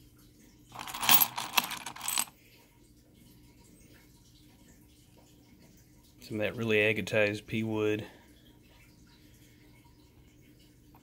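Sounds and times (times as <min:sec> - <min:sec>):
stones clinking in a bowl: 0:00.7 - 0:02.3.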